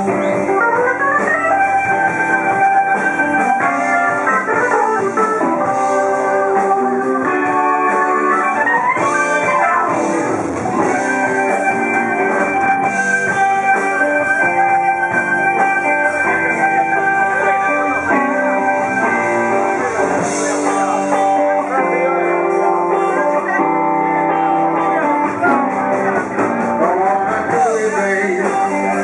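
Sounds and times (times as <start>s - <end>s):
blues band playing: 0.0s - 29.0s
electric guitar: 0.0s - 29.0s.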